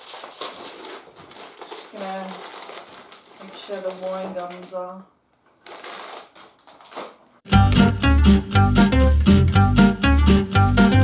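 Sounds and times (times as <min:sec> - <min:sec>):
plastic packet crinkling: 0:00.0 - 0:07.4
loud music with strong bass: 0:07.5 - 0:11.0.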